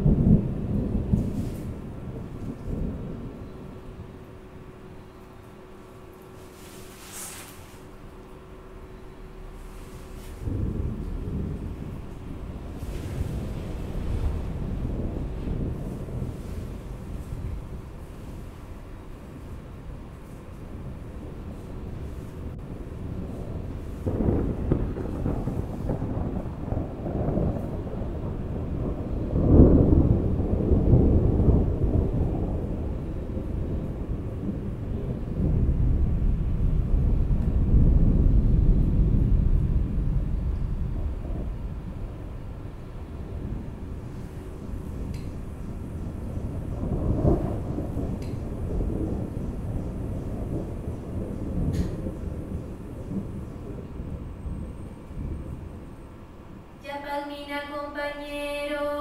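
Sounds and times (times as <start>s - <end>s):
deep low rumble: 0.0s - 56.5s.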